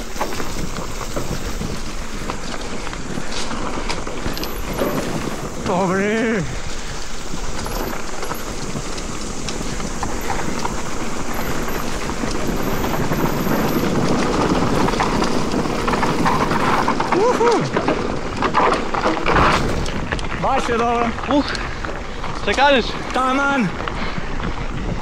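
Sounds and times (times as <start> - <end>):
bike knocking and rattling: 0.0 - 25.0
bike tyres on leafy dirt trail: 0.0 - 25.0
wind on microphone: 23.7 - 25.0.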